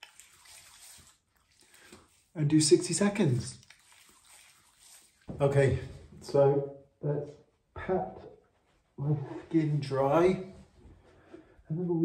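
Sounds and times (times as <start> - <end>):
hands rubbing wet skin: 0.0 - 5.4.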